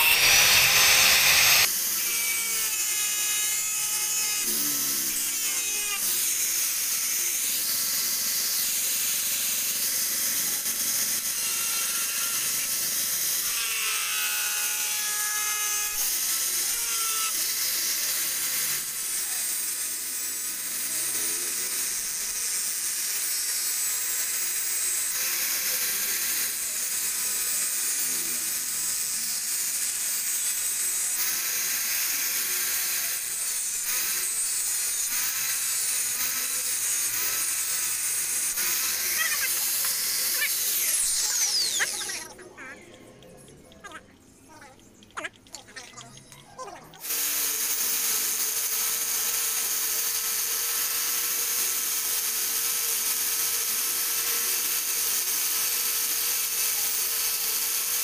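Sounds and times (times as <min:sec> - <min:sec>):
angle grinder cutting steel: 0:00.0 - 0:44.4, 0:46.9 - 0:58.0.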